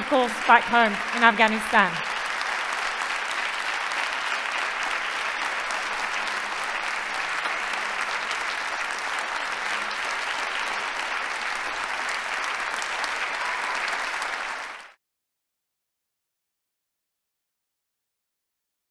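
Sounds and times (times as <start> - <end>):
large audience applauding: 0.0 - 15.0.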